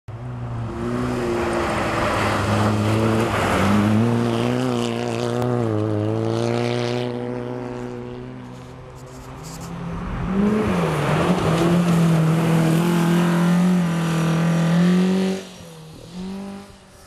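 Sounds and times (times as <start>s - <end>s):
rally car engine revving: 0.2s - 17.0s.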